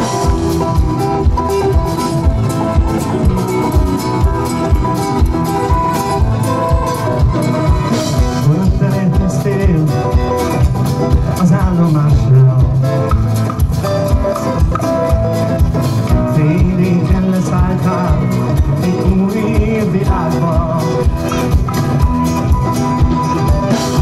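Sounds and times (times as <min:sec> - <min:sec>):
live band playing upbeat song: 0:00.0 - 0:24.0.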